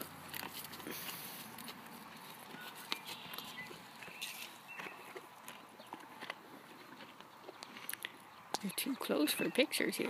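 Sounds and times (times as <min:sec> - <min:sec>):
horse hooves on dirt: 0:00.0 - 0:10.0.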